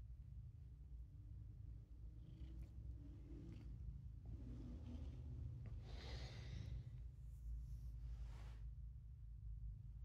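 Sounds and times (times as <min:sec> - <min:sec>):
cat purring: 0:02.0 - 0:05.2.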